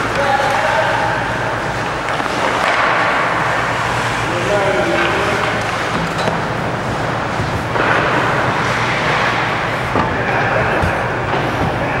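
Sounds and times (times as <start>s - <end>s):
arena background hum: 0.0s - 12.0s
skates on ice: 1.6s - 12.0s.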